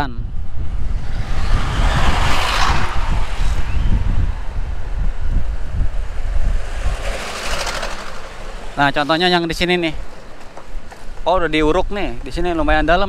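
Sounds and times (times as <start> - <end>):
low rumble of engine and road: 0.0 - 13.0
wind rushing over microphone: 0.0 - 13.0.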